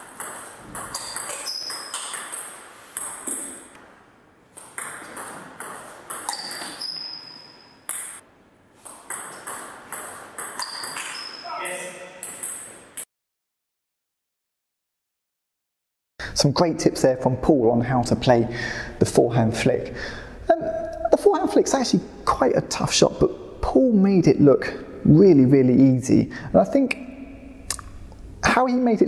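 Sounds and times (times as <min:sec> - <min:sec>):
short high squeaks: 0:00.9 - 0:02.2, 0:06.3 - 0:07.9, 0:10.6 - 0:12.4.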